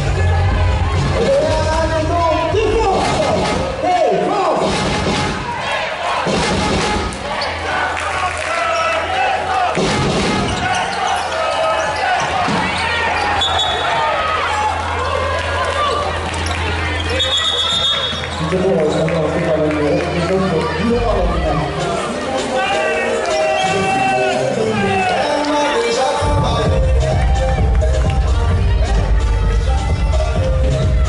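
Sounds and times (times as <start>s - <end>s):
shoes squeaking on floor: 10.3s - 14.1s, 16.4s - 19.3s, 21.9s - 24.2s
wash of voices in hall: 10.6s - 26.8s.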